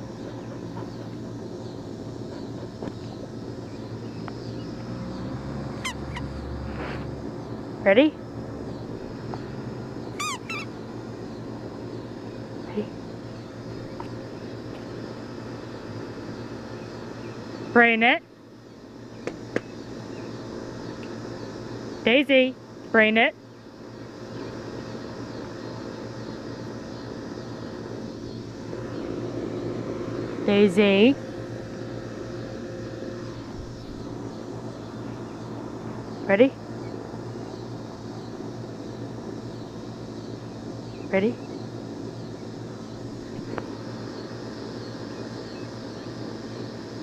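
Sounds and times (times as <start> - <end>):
low mechanical drone: 0.0 - 47.0
puppy whining: 5.8 - 6.4, 10.2 - 10.7
low hum: 25.2 - 46.9.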